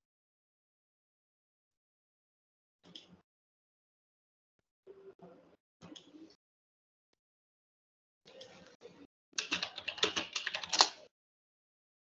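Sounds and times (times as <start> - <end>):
typing on keyboard: 9.4 - 11.1.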